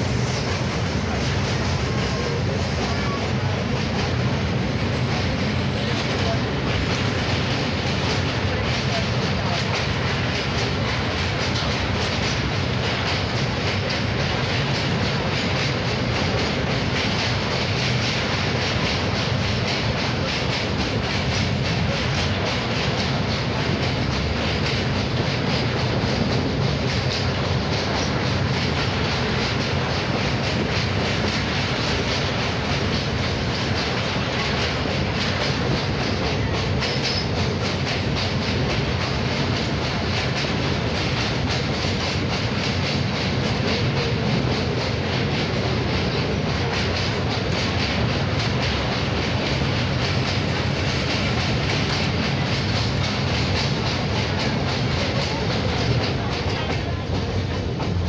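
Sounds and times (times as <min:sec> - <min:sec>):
train wheels on rails: 0:00.0 - 0:58.0.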